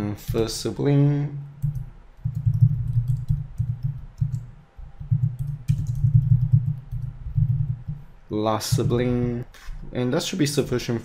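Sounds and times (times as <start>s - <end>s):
typing on computer keyboard: 1.6s - 8.0s.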